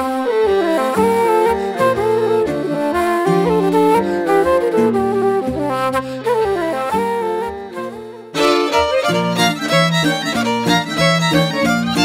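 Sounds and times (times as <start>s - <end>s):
bowed fiddle: 0.0s - 12.0s
wooden flute melody: 0.0s - 12.0s.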